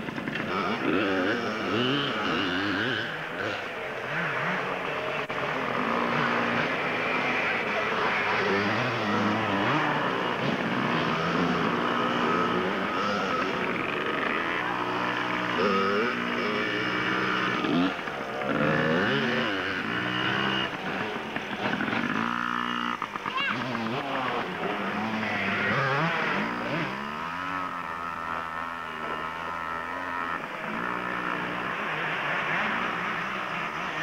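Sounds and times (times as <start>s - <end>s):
dirt bike engine revving: 0.0s - 34.0s.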